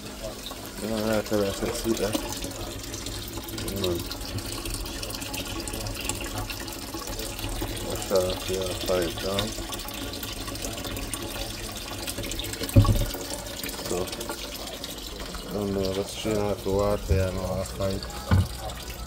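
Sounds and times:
faucet running into steel sink: 0:00.0 - 0:19.0
dull thump: 0:12.8 - 0:13.1, 0:18.3 - 0:18.6.

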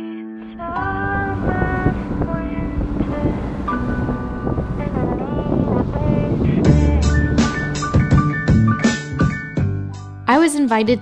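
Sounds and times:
background music melody: 0:00.0 - 0:11.0
wind rumbling on microphone: 0:00.6 - 0:08.8.

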